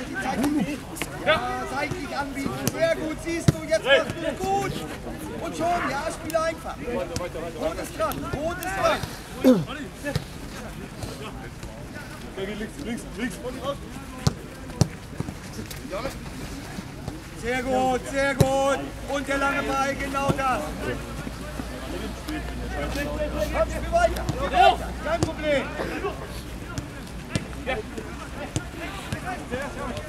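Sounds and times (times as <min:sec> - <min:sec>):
faint voices of players: 0:00.0 - 0:30.0.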